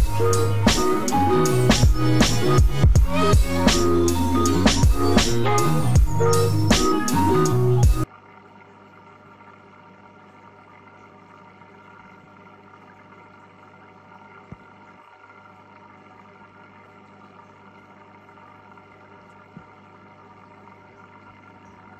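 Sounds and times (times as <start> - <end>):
aquarium equipment electrical hum: 8.0 - 21.9.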